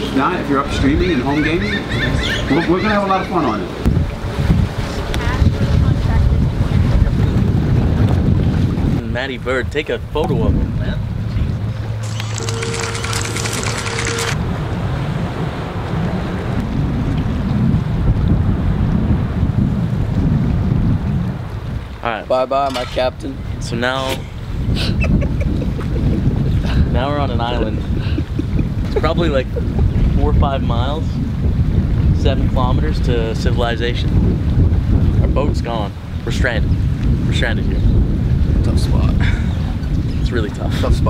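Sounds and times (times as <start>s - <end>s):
wind buffeting microphone: 0.0s - 12.2s, 14.3s - 41.0s.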